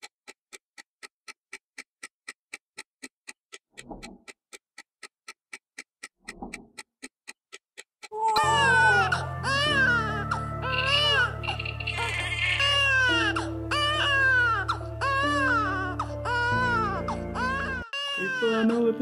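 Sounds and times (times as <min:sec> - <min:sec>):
clock ticking: 0:00.0 - 0:12.6
baby crying: 0:08.1 - 0:19.0
music: 0:08.4 - 0:19.0.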